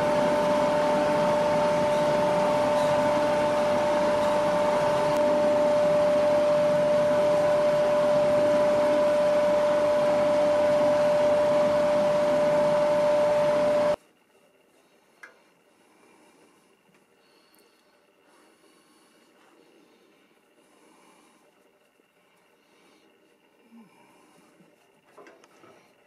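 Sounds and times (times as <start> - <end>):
wood lathe running: 0.0 - 14.0.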